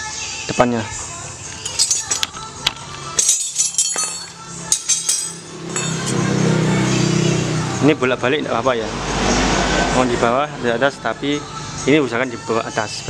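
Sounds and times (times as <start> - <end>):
metallic clinks of tools: 1.6 - 6.3
engine hum: 4.2 - 12.1.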